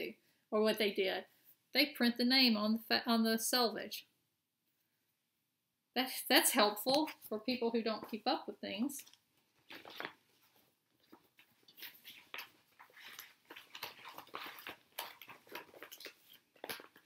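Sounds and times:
fabric and wrapping crinkling: 0:06.6 - 0:17.0.

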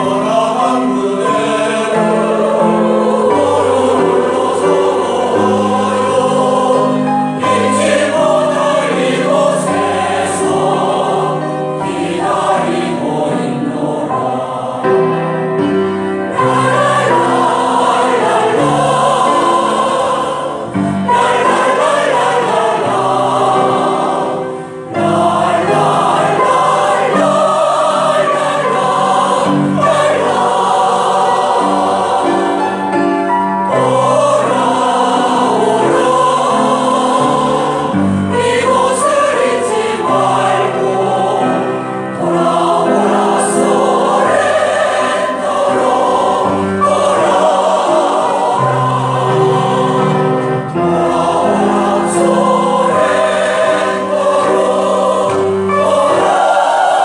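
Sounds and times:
mixed choir singing: 0:00.0 - 0:57.0.

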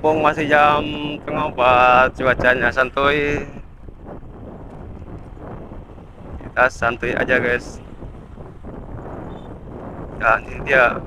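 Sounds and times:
motorcycle engine rumble: 0:00.0 - 0:11.0
wind rushing over microphone: 0:00.0 - 0:11.0.

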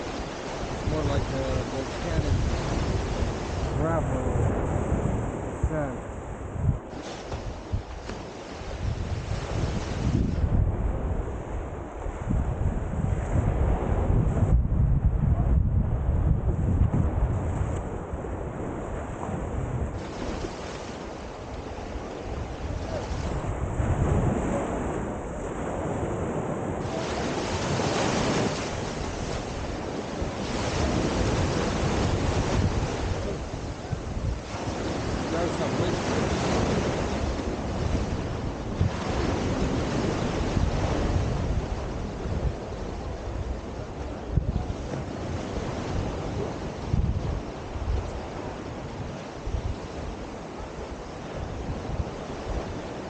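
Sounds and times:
surf breaking on beach: 0:00.0 - 0:53.0
wind buffeting microphone: 0:00.0 - 0:53.0.

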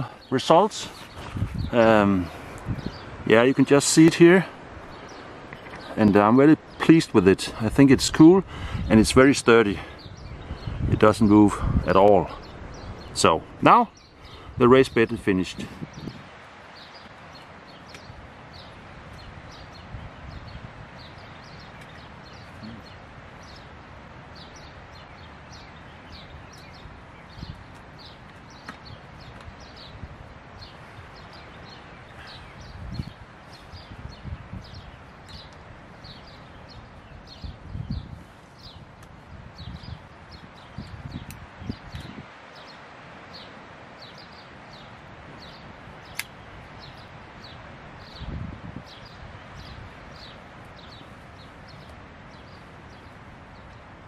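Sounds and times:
bird chirping: 0:00.0 - 0:53.8
wind in trees: 0:00.0 - 0:54.0.

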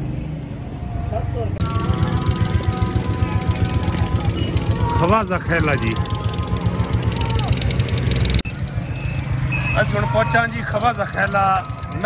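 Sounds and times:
vehicle engine pulsing: 0:01.6 - 0:12.0.

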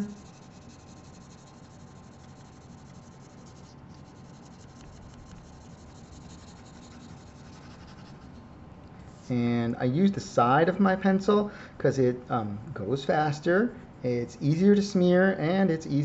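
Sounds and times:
pencil shading on paper: 0:00.0 - 0:08.3.

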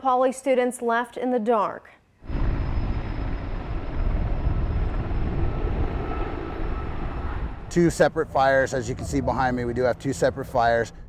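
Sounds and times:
aircraft engines droning overhead: 0:02.2 - 0:11.0.

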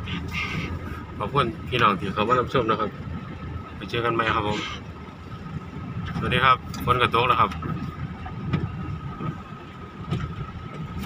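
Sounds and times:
vehicle rumbling over dirt road: 0:00.0 - 0:11.0.

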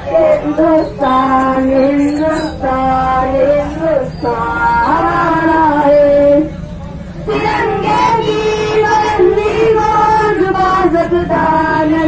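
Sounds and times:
voices singing song: 0:00.0 - 0:12.0.

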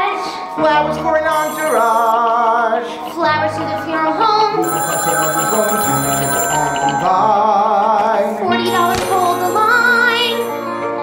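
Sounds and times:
telephone ringing: 0:01.3 - 0:02.5, 0:04.5 - 0:10.7.

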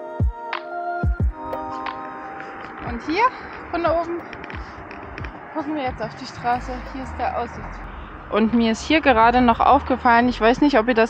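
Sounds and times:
road traffic: 0:00.6 - 0:11.0
river rushing: 0:01.4 - 0:09.5
woman speaking: 0:02.8 - 0:04.3, 0:05.5 - 0:11.0.

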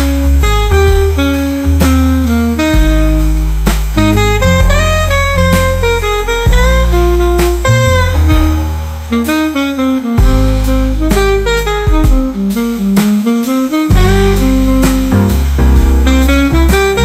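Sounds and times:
drums: 0:00.0 - 0:17.0
piano: 0:00.0 - 0:17.0
saxophone melody: 0:00.0 - 0:17.0
upright bass: 0:00.0 - 0:17.0.

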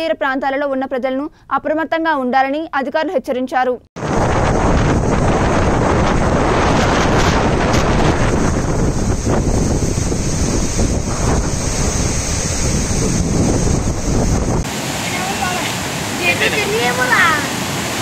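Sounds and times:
wind buffeting microphone: 0:04.0 - 0:18.0
floodwater rushing through spillway: 0:14.7 - 0:18.0.

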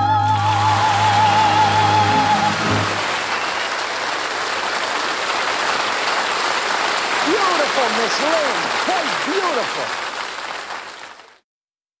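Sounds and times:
audience applauding: 0:00.1 - 0:11.4.

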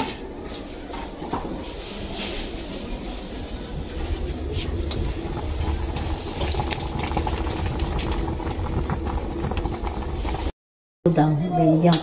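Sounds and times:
soup boiling and bubbling: 0:00.9 - 0:10.5.

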